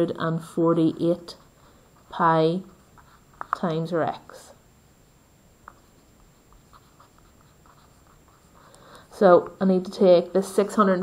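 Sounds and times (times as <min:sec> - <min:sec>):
pen writing on paper: 0:06.6 - 0:08.6.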